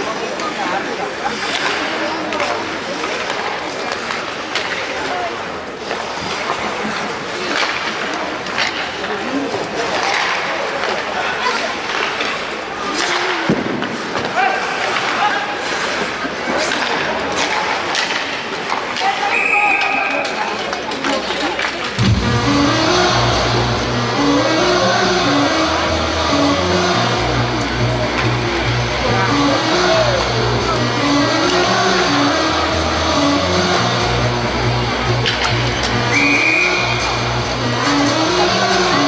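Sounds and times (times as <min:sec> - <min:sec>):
skates and sticks on ice: 0:00.0 - 0:22.0, 0:26.8 - 0:32.4, 0:33.6 - 0:39.0
puck and stick clicks: 0:01.4 - 0:05.1, 0:05.8 - 0:22.0, 0:27.6 - 0:28.4, 0:31.3 - 0:32.0, 0:35.1 - 0:37.2
voices: 0:14.2 - 0:39.0
referee's whistle: 0:19.3 - 0:20.2, 0:36.1 - 0:37.0
rock music over pa system: 0:22.0 - 0:39.0.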